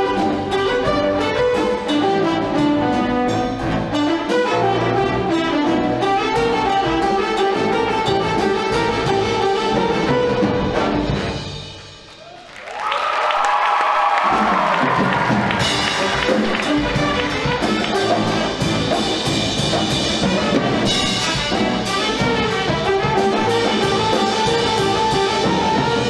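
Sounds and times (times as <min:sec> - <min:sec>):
live band with brass: 0:00.0 - 0:26.0.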